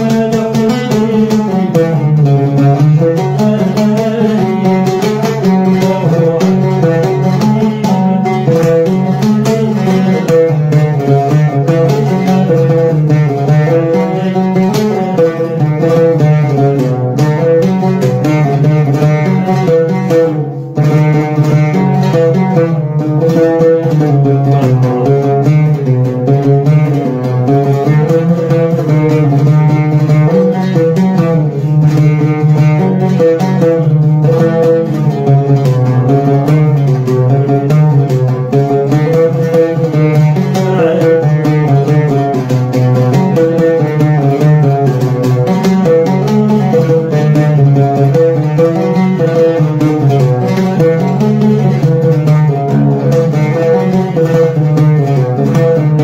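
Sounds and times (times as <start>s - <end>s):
oud played with plectrum: 0.0s - 56.0s
man singing: 3.1s - 6.2s, 40.4s - 41.8s.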